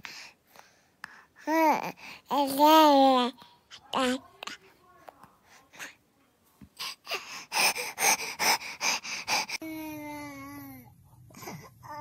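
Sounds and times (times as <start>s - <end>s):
baby gasping: 6.8s - 9.6s.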